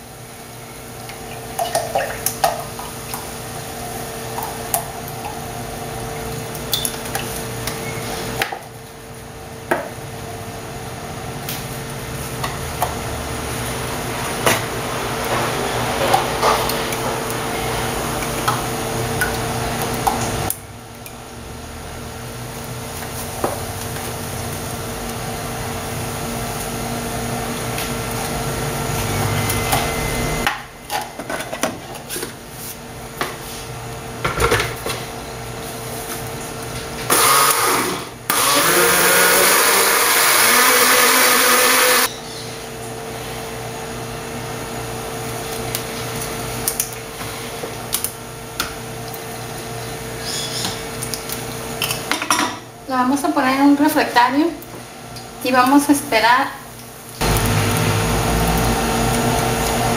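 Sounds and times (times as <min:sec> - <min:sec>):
electric blender running: 0:37.1 - 0:42.1, 0:57.2 - 0:59.9.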